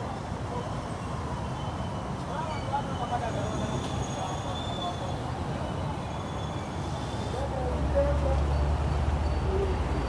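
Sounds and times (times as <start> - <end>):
street noise: 0.0 - 10.0
vehicle engine rumble: 5.2 - 10.0.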